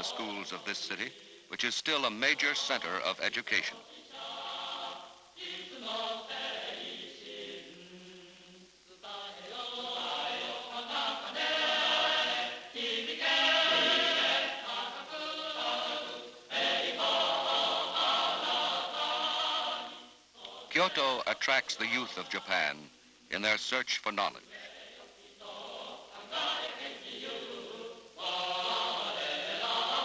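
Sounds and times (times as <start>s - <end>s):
choir singing long chords: 0.0s - 22.8s, 24.5s - 30.0s.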